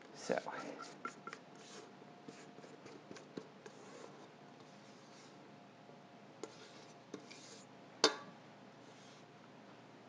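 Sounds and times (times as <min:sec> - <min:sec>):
spatula scraping metal bowl: 0:00.3 - 0:05.4, 0:06.4 - 0:07.7.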